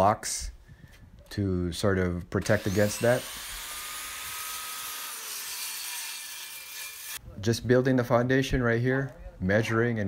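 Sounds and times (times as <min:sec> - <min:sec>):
circular saw cutting wood: 0:02.4 - 0:07.2.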